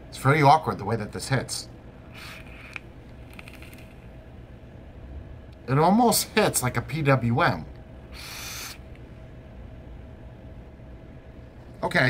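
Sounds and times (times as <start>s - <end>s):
low room hum: 0.0s - 12.0s
breathy vapour exhale: 2.1s - 2.8s, 8.1s - 8.9s.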